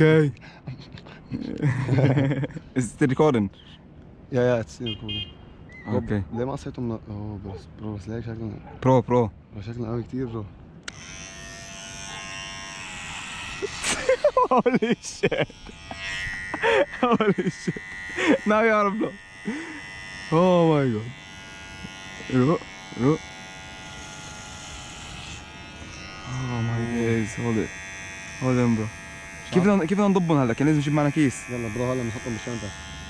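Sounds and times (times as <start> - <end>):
electric hair clippers buzzing: 10.9 - 33.0.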